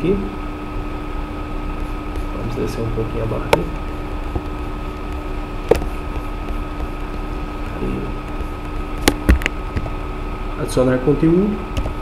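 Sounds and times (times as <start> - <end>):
background hum and hiss: 0.0 - 12.0.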